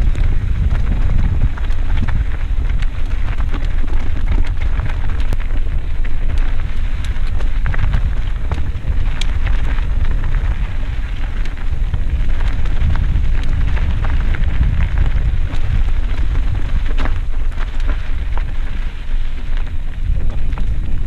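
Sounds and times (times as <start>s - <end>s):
bike clicks and rattles: 0.0s - 21.0s
tyres crunching over loose dirt: 0.0s - 21.0s
wind rumble on microphone: 0.0s - 21.0s.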